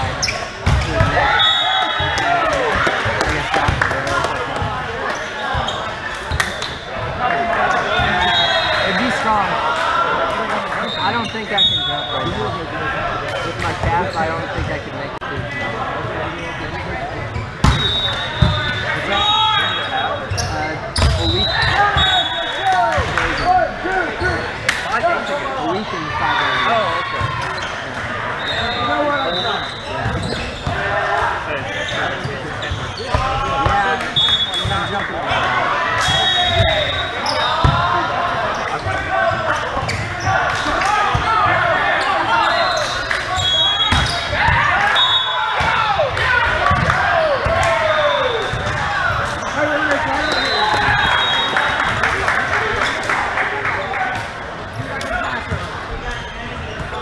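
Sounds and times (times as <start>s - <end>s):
sneakers squeaking on court: 0.0s - 1.2s, 4.6s - 6.9s, 19.6s - 22.2s, 27.2s - 30.9s, 31.6s - 35.0s, 38.5s - 40.4s, 54.7s - 57.0s
players calling out: 0.0s - 57.0s.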